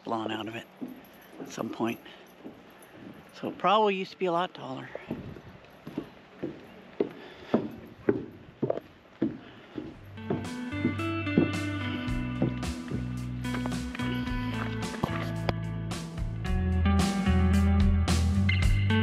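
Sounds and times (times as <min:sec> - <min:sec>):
footsteps on a path: 0:00.2 - 0:15.7
guitar music: 0:10.0 - 0:19.0.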